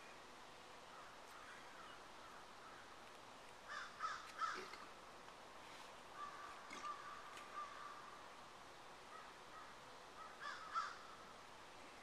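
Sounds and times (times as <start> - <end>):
bird harsh calls: 3.7 - 4.8, 9.1 - 11.2.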